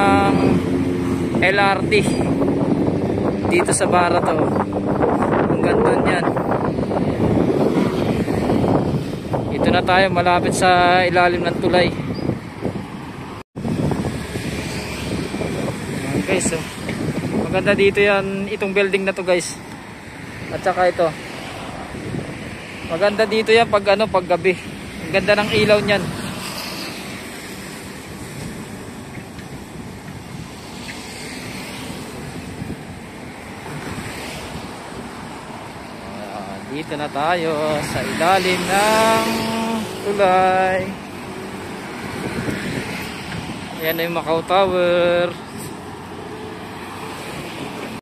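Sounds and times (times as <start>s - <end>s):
cars driving past: 0.0s - 48.0s
wind blowing across microphone: 0.0s - 48.0s.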